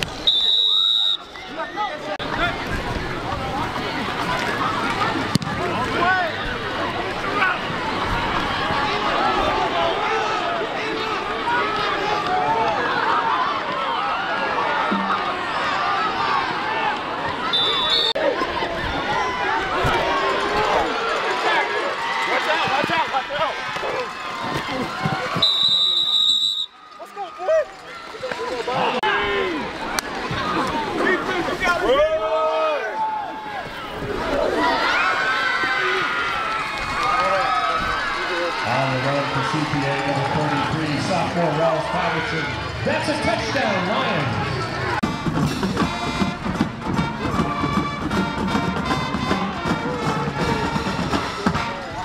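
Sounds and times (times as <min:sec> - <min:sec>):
crowd talking and cheering: 0:00.0 - 0:52.0
whistle blowing: 0:00.2 - 0:01.4, 0:17.5 - 0:18.2, 0:25.4 - 0:26.8.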